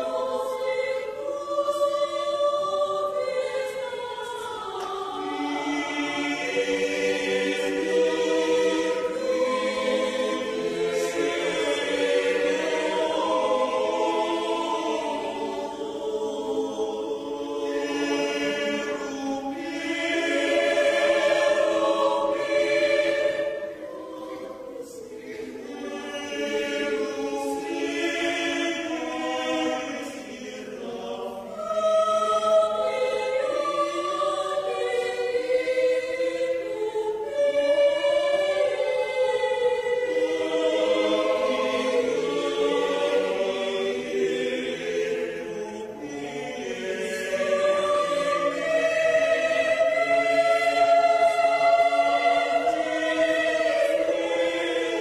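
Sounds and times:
mixed choir singing: 0.0 - 55.0.

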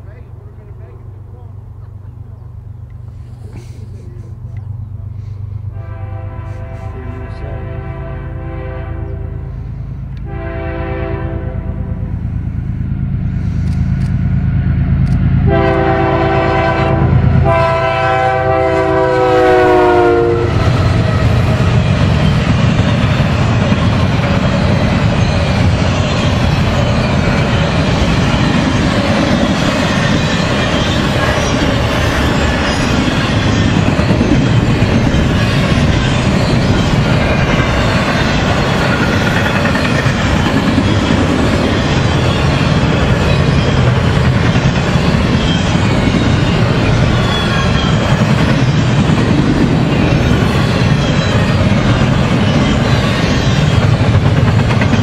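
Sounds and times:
train cars rumbling and clacking: 0.0 - 55.0
locomotive air horn: 5.6 - 12.1, 15.4 - 20.8.

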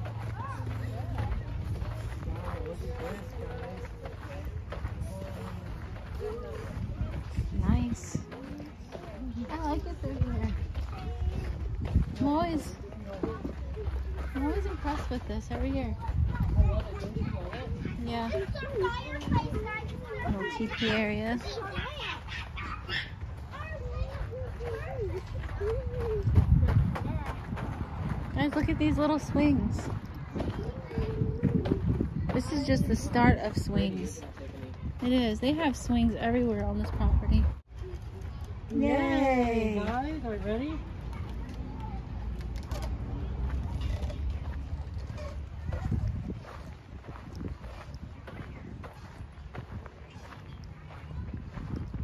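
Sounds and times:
wind rumbling on microphone: 0.0 - 14.2, 15.1 - 21.9, 22.8 - 39.8, 40.6 - 52.0
footsteps: 0.0 - 52.0
low rumbling on microphone: 29.5 - 35.0, 40.8 - 52.0.

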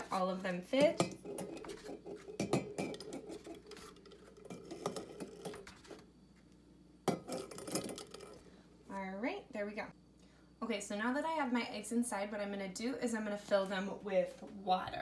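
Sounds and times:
eggs knocking in a metal saucepan: 0.8 - 3.8, 7.0 - 8.4.

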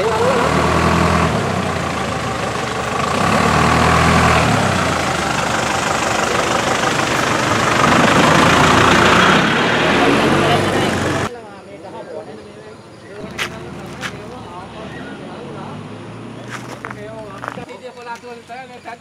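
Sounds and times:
diesel truck engine running: 0.0 - 11.3, 13.2 - 17.7.

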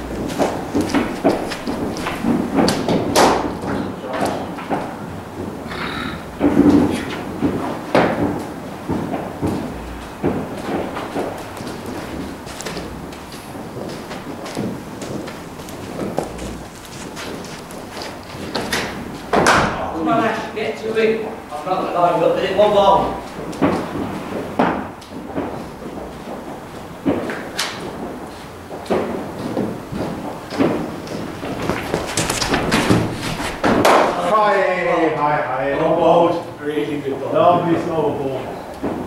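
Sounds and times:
cricket bat striking ball: 0.1 - 5.6, 28.9 - 34.2
voices echoing in hall: 19.6 - 23.7, 34.0 - 38.8.

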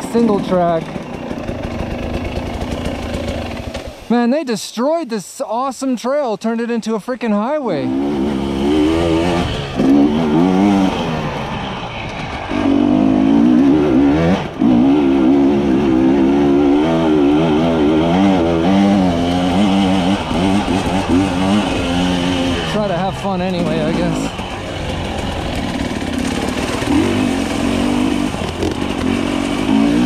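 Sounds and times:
dirt bike engine revving: 0.0 - 4.2, 7.4 - 30.0.

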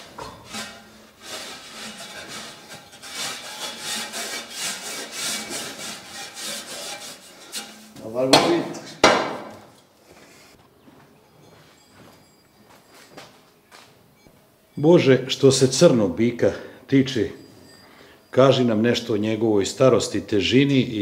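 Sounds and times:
brush scraping over hide: 0.0 - 8.0
sharp knock: 8.3 - 9.5.

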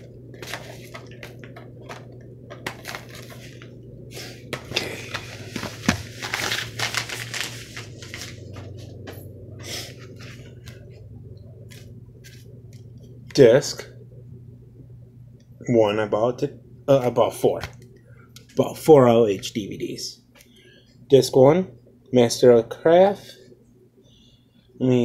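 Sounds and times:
padded envelope rustling: 0.0 - 11.0
steady low hum: 0.0 - 25.0.

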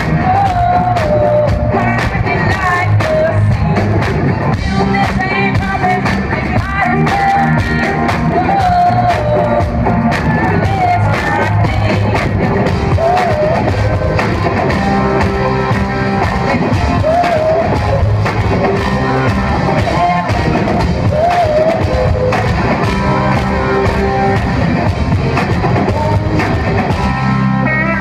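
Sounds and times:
woman singing: 0.0 - 14.3, 16.3 - 18.3, 19.6 - 24.2
steady drum beat: 0.0 - 27.7.

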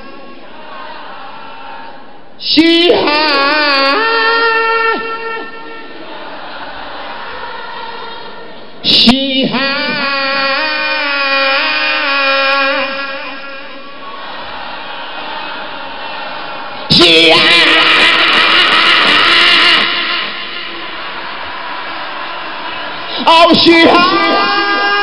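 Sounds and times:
amplified voice: 0.0 - 25.0
crowd noise: 0.0 - 25.0
crowd yelling: 0.0 - 25.0.

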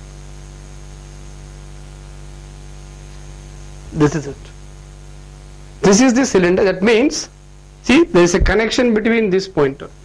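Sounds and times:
electrical mains hum: 0.0 - 10.0
recording hiss: 3.0 - 4.6, 5.7 - 10.0
man speaking: 3.9 - 4.6, 5.8 - 10.0.

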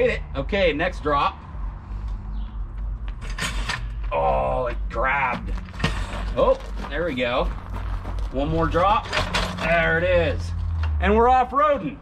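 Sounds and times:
floor jack rolling rumble: 5.4 - 11.0.

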